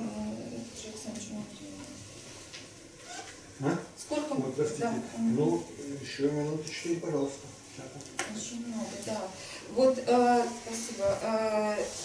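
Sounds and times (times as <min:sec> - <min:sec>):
woman speaking: 0:00.0 - 0:02.1, 0:08.2 - 0:12.0.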